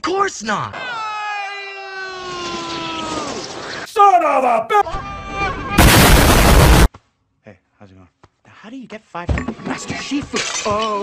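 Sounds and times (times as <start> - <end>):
loud distorted noise blast: 5.8 - 6.9.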